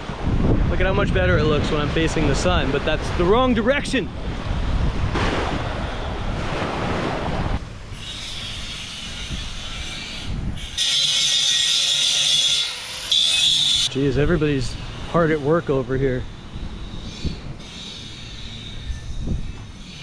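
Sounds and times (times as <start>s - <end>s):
wind buffeting microphone: 0.0s - 10.8s, 13.7s - 20.0s
angle grinder whining on steel: 7.6s - 13.9s, 14.7s - 20.0s.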